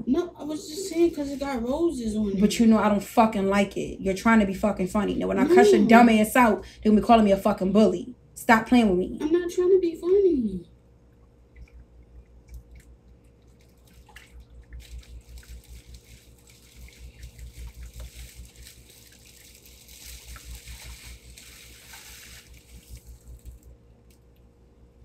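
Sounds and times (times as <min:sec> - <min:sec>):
water splashing in plastic tub: 0:12.4 - 0:23.6.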